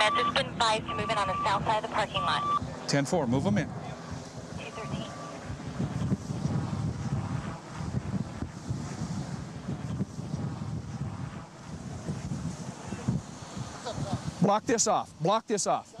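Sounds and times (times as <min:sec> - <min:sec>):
wind buffeting microphone: 0:00.0 - 0:14.5.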